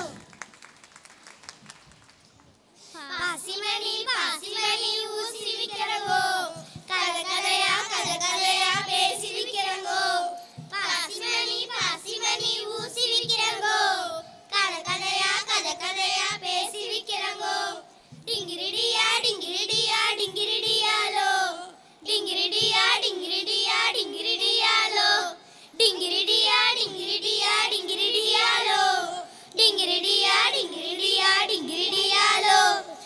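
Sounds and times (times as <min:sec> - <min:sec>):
children singing in unison: 0:03.2 - 0:33.0.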